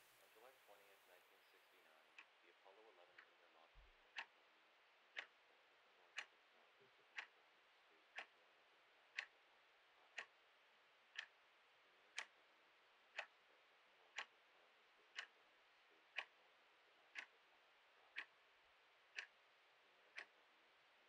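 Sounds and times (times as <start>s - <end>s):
clock ticking: 2.1s - 21.0s.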